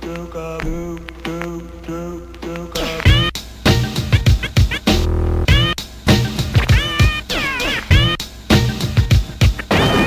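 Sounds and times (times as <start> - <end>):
scratched samples: 0.0 - 3.3
hip-hop drum beat: 0.0 - 10.0
meow-like pitch-bending wail: 6.7 - 8.0.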